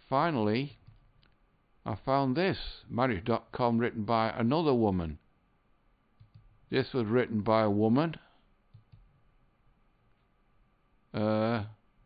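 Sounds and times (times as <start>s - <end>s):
low background hiss: 0.0s - 12.0s
computer mouse click: 6.2s - 6.5s, 8.7s - 9.1s.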